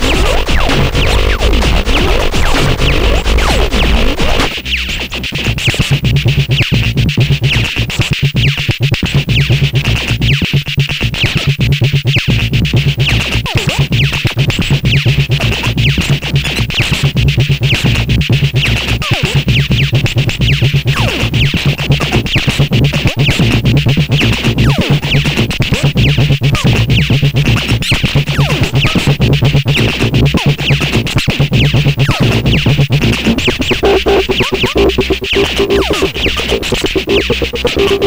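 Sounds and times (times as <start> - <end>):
sustained synth bass: 0.0 - 10.6, 17.1 - 38.0
hard electronic drum groove: 0.0 - 38.0.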